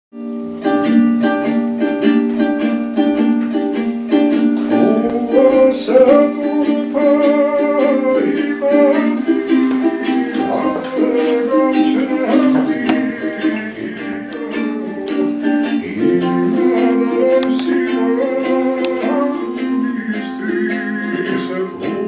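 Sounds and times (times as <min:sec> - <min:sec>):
lute strummed: 0:00.1 - 0:22.0
men singing in close harmony: 0:04.7 - 0:22.0.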